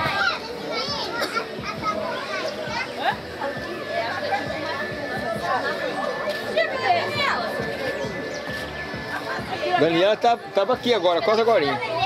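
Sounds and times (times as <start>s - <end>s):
people talking: 0.0s - 10.5s
children chattering and calling out: 0.0s - 12.0s.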